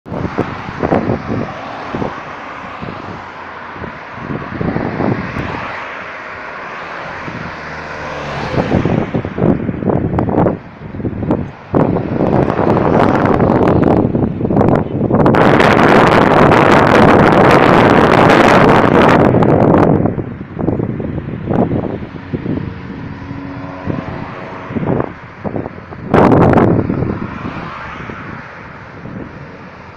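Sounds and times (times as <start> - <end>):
cars passing: 0.0 - 29.9
wind buffeting microphone: 0.0 - 29.9.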